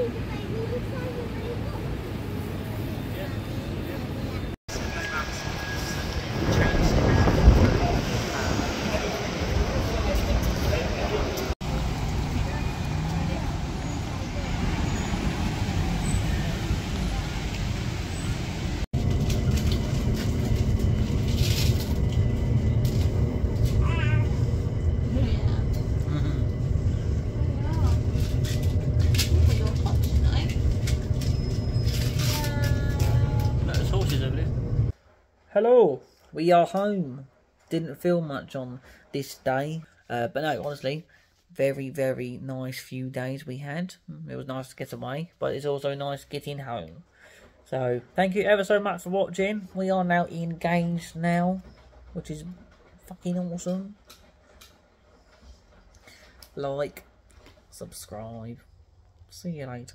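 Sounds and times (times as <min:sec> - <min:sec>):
passengers' voices: 0:00.0 - 0:15.1, 0:20.7 - 0:34.9
street noise with people talking: 0:00.0 - 0:15.3
train carriage rumbling: 0:00.0 - 0:35.6, 0:44.6 - 0:59.9.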